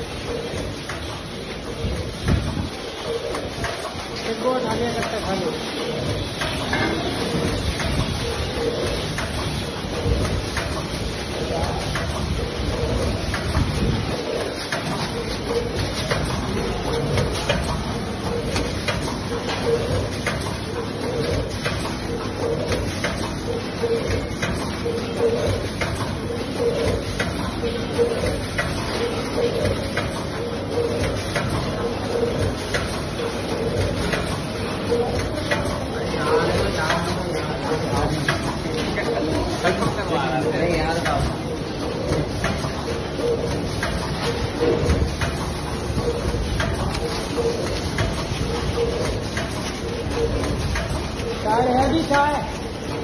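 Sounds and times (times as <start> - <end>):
packing machine running: 0.0 - 53.0.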